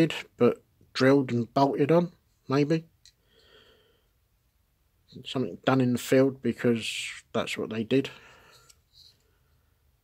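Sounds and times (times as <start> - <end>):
man breathing faintly: 3.1 - 4.3, 8.1 - 10.0.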